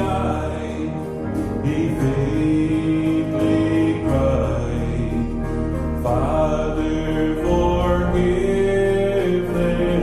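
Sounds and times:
acoustic guitar: 0.0 - 10.0
man singing long notes: 0.0 - 10.0
piano accompaniment: 0.0 - 10.0.

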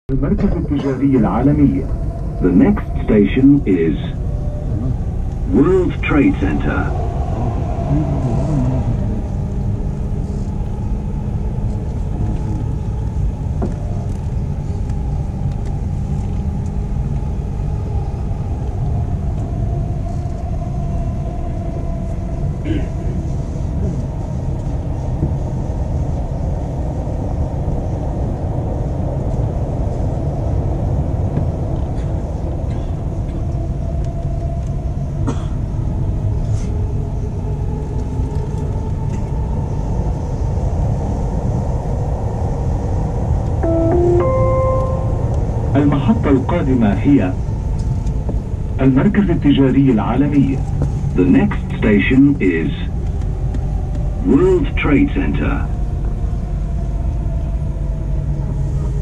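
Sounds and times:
faint hum: 0.1 - 24.8, 37.0 - 59.0.

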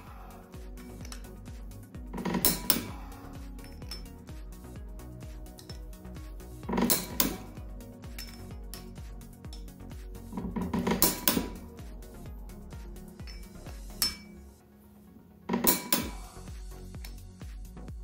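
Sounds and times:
background music: 0.0 - 18.0
torque wrench clicking: 0.8 - 1.4.

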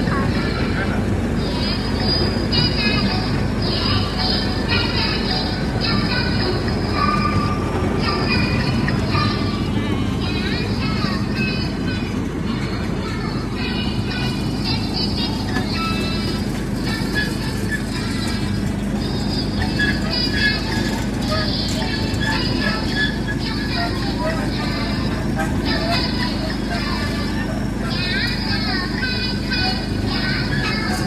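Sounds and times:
music: 0.0 - 31.0
small train rumbling: 0.0 - 31.0.

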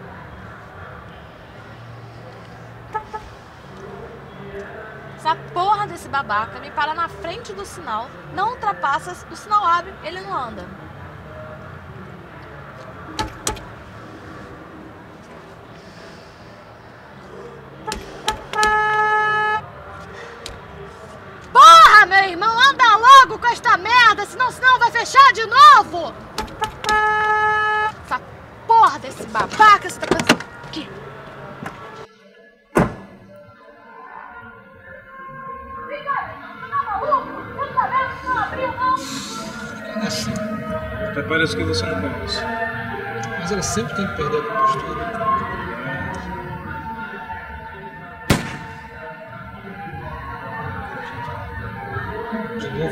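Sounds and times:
sharp knocks inside a car: 13.2 - 13.7, 17.9 - 18.8, 26.4 - 27.0, 32.8 - 33.1.

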